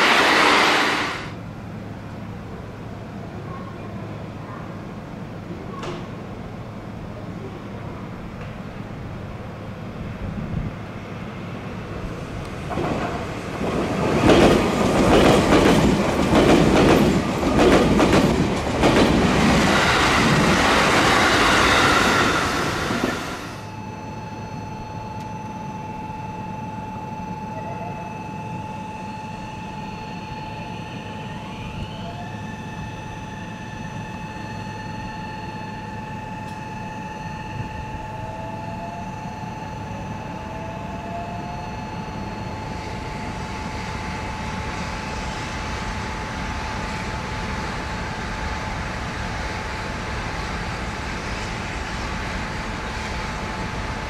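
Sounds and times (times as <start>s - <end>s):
short rising whines: 0.0s - 1.4s, 19.6s - 45.5s
electric train humming: 0.0s - 3.4s, 6.2s - 54.0s
train wheels clacking over rails: 12.5s - 23.5s.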